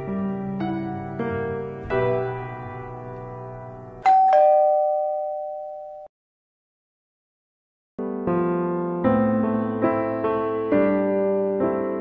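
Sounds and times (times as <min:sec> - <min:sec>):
doorbell ding-dong: 0:04.0 - 0:06.1.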